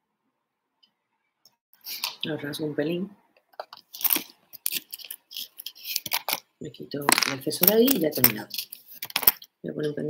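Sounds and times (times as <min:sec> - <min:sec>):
makeup items rustling: 0:01.8 - 0:02.2, 0:03.6 - 0:09.5.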